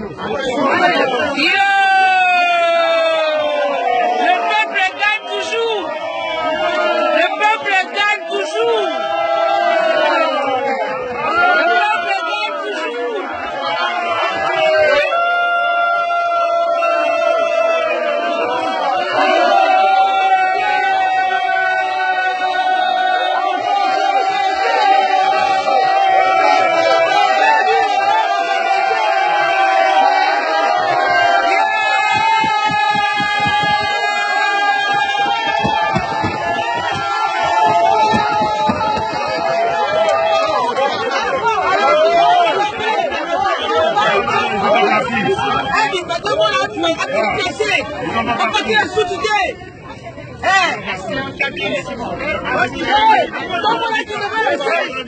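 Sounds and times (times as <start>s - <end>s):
agitated crowd noise: 0.0s - 55.0s
people shouting and talking: 0.0s - 55.0s.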